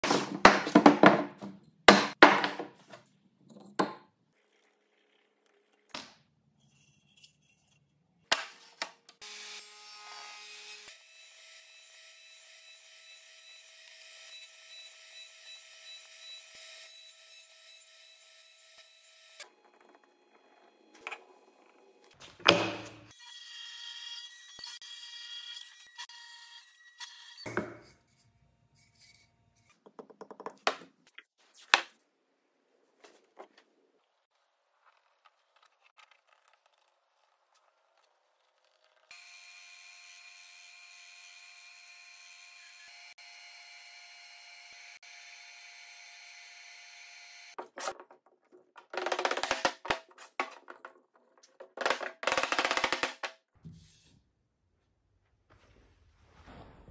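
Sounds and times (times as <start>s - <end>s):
wooden blocks knocking and sliding: 0.0s - 4.1s, 22.3s - 23.1s, 29.8s - 32.0s, 47.6s - 53.5s
power saw cutting wood: 39.1s - 47.6s.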